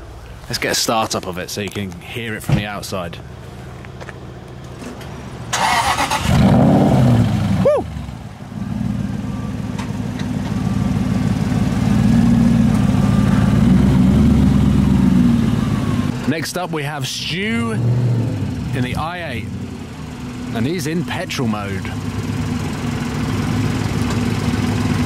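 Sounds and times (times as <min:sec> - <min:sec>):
car engine revving and idling: 0:03.4 - 0:25.0
engine starter turning: 0:05.5 - 0:06.6.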